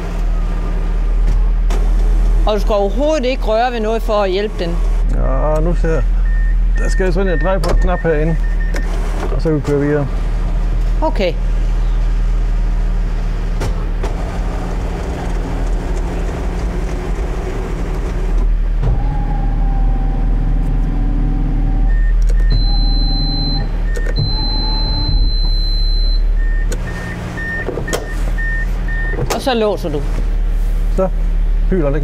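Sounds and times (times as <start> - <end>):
car engine idling: 0.0 - 32.0
repeating warning beep: 6.2 - 8.8, 21.9 - 29.2
electric roof motors whining: 13.9 - 29.2.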